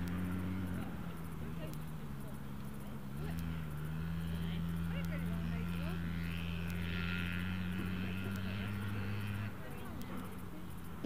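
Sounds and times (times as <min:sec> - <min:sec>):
motor engine droning: 0:00.0 - 0:11.0.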